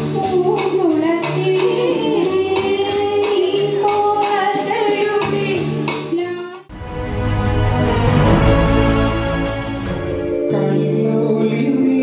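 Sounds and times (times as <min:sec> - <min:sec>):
woman singing into a microphone: 0:00.0 - 0:06.7
music with a steady beat: 0:06.7 - 0:12.0.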